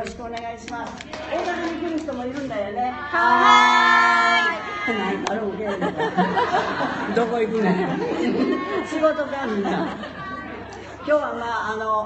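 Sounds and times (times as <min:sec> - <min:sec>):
people talking and chattering: 0:00.0 - 0:12.0.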